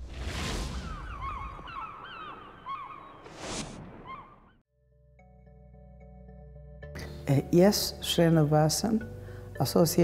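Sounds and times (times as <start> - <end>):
gulls calling: 0.7 - 4.6.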